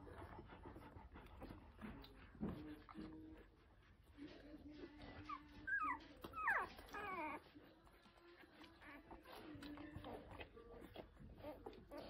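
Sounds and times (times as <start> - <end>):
puppies whimpering: 4.8 - 12.0.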